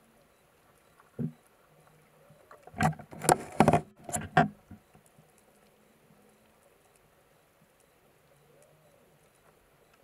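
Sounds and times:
low underwater hum: 0.0s - 10.0s
faint clicks: 4.6s - 10.0s.

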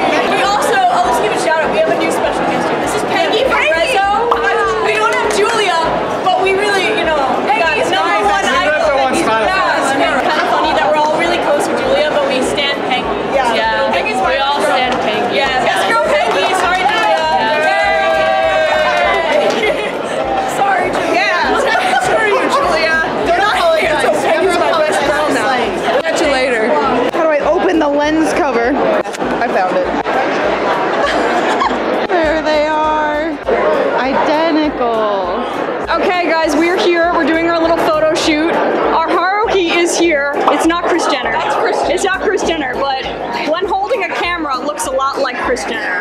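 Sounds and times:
people chattering excitedly: 0.0s - 46.0s
people talking and exclaiming: 0.0s - 46.0s.

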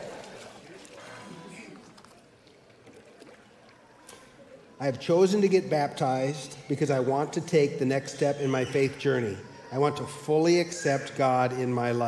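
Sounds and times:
water lapping in a pool: 0.0s - 12.0s.

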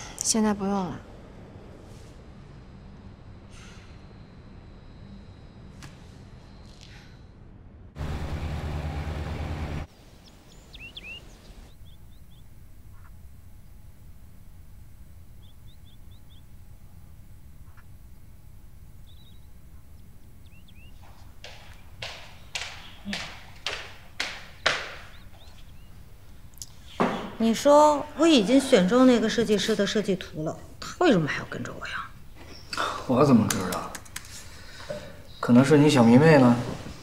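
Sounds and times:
high bird chirps: 10.2s - 13.1s, 19.0s - 23.1s
footsteps on wooden floor: 20.9s - 25.7s.

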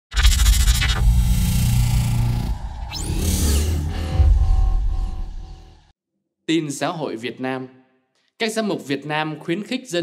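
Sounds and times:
scratchy crackling burst: 0.1s - 2.7s
deep low rumble: 0.9s - 5.9s
rising whoosh: 1.0s - 5.9s.

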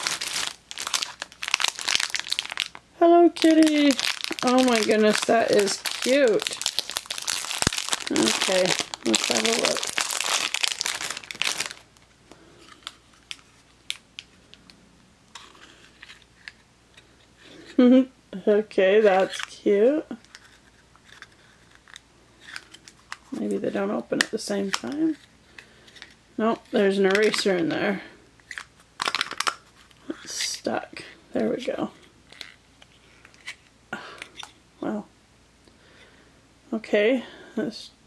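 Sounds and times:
plastic packaging crinkling and tearing: 0.0s - 14.6s, 26.0s - 27.7s, 28.4s - 30.4s
plastic case clicking and crackling: 28.4s - 29.6s.

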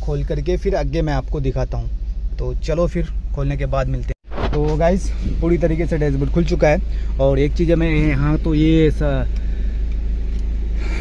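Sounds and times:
steady low hum: 0.0s - 11.0s
short noisy rustle: 4.3s - 4.9s.

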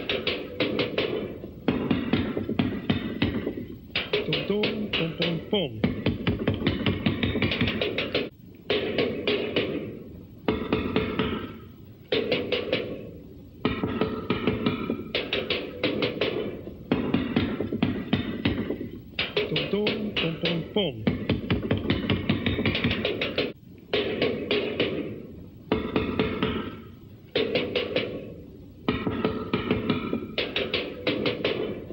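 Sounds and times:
drum kit playing fast bursts: 0.0s - 23.6s.

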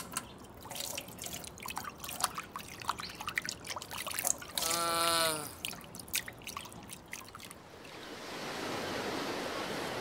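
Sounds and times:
small drips and clicks: 0.0s - 4.8s, 5.5s - 8.0s.

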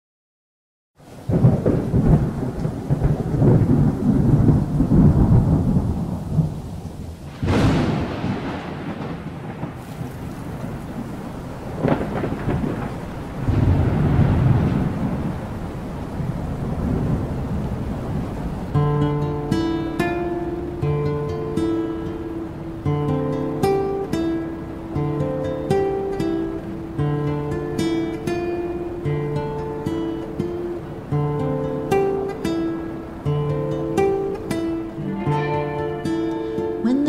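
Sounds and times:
steady rain: 1.0s - 37.0s
rolling thunder: 1.2s - 36.8s
sharp thunderclaps: 1.3s - 19.7s.

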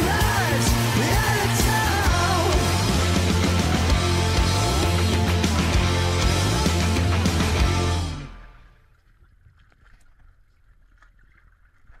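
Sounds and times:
water lapping against boat: 8.8s - 12.0s.

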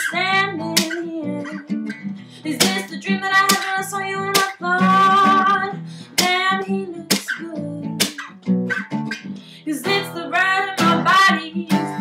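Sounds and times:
woman singing: 0.0s - 8.2s, 9.5s - 12.0s
acoustic guitar strumming: 0.0s - 12.0s.

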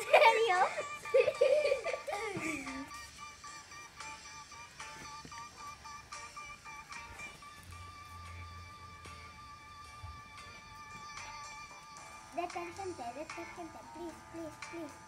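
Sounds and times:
girls laughing and giggling: 0.0s - 3.1s
light background music: 0.0s - 15.0s.

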